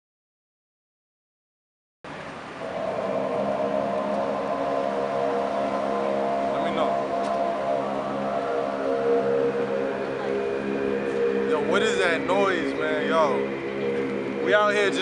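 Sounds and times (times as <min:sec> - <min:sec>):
steady droning chord: 0:02.1 - 0:15.0.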